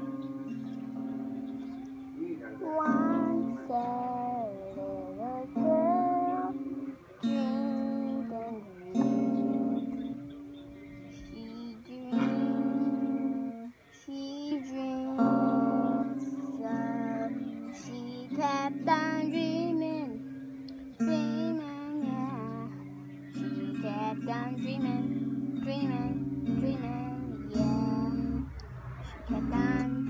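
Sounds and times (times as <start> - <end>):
acoustic guitar strumming chords: 0.0 - 30.0.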